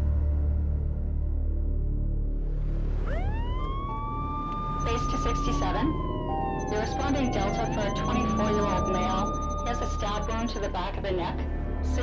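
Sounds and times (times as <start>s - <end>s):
low droning music: 0.0s - 12.0s
ambulance siren wailing: 3.0s - 11.1s.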